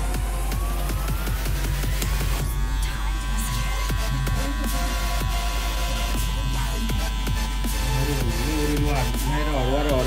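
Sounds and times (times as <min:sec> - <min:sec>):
electric hair clipper buzzing: 0:00.0 - 0:10.0
electronic background music: 0:00.0 - 0:10.0.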